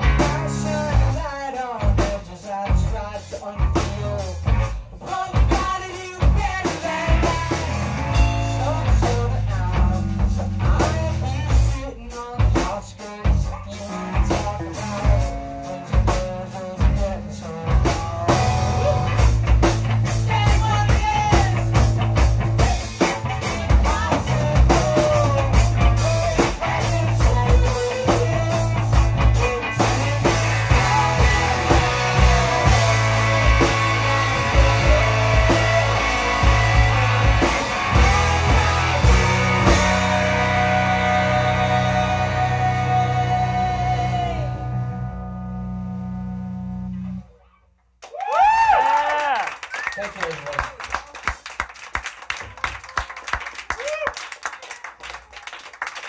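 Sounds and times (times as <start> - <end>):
drum kit: 0.0 - 44.5
rock band playing: 0.0 - 47.4
people singing: 5.0 - 10.1, 24.0 - 44.6.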